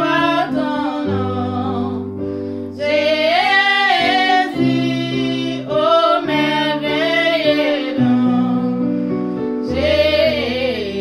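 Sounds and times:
woman singing gospel: 0:00.0 - 0:08.9, 0:09.6 - 0:11.0.

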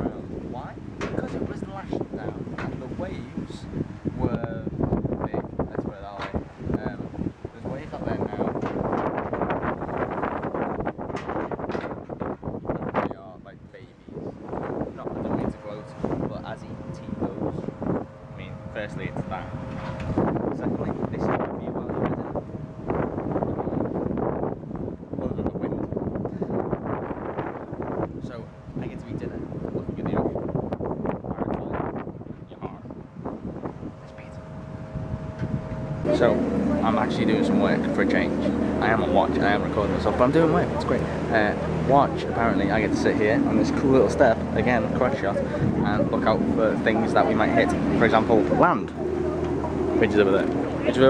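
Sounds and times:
sea water rushing along hull: 0:00.0 - 0:13.2, 0:13.9 - 0:51.0
wind buffeting microphone: 0:00.0 - 0:51.0.

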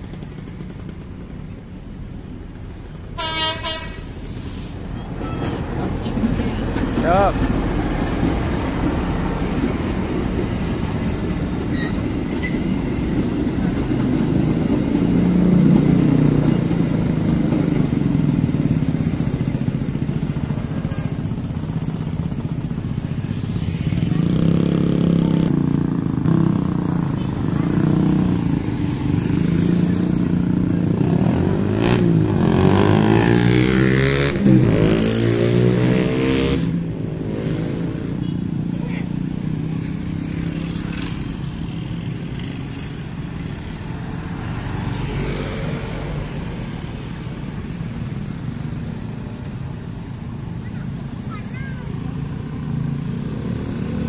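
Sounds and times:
passenger train rolling past: 0:00.0 - 0:33.6
motorcycle engines revving past: 0:12.0 - 0:54.0.

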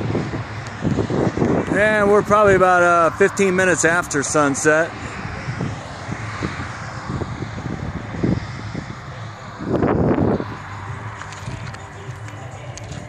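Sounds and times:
passing vehicle rumble: 0:00.0 - 0:13.0.

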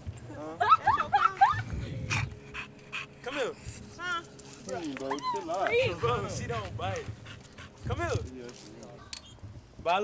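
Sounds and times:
dog panting: 0:02.1 - 0:03.8, 0:05.8 - 0:08.3.

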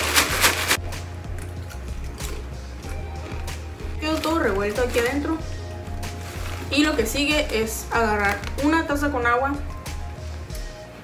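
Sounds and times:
chip bag crinkling and rattling: 0:00.0 - 0:00.8, 0:03.4 - 0:08.7
quiet background music: 0:00.0 - 0:11.0.

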